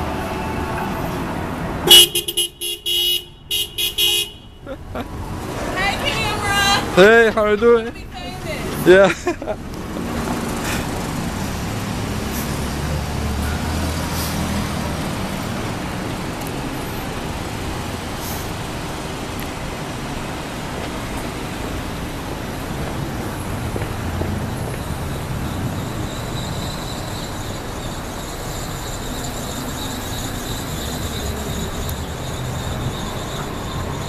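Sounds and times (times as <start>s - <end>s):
passing cars: 0.0s - 34.0s.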